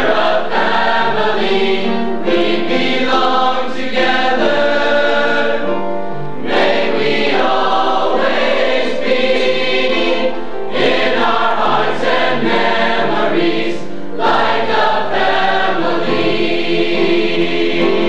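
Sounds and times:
mixed choir singing: 0.0s - 18.0s.

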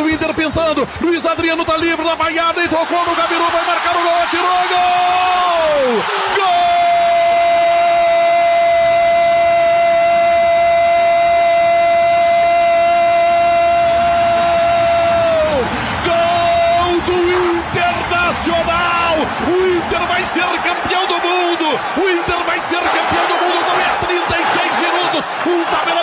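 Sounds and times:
rapid commentary: 0.0s - 7.1s, 16.0s - 26.0s
commentator shouting goal: 0.0s - 8.4s, 16.0s - 26.0s
stadium crowd noise: 0.0s - 26.0s.

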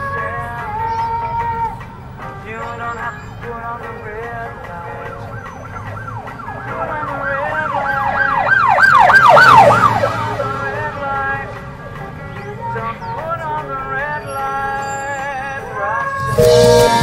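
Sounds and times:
band backing music: 0.0s - 17.0s
emergency siren wailing: 5.0s - 11.4s, 16.0s - 17.0s.

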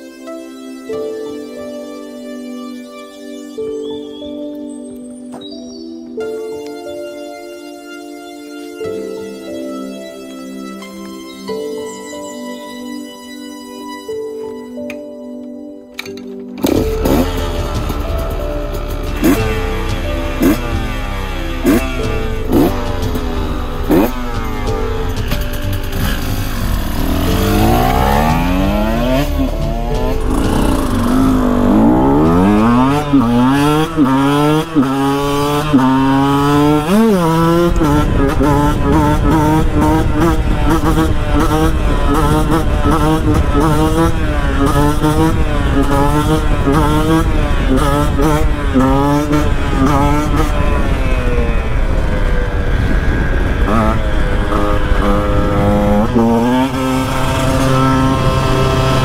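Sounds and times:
two-stroke motorcycle engine revving: 16.6s - 59.0s.

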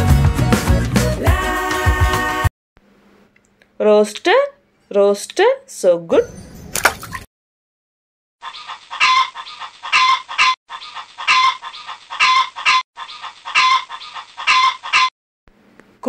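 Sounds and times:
rooster crowing: 8.4s - 15.1s.

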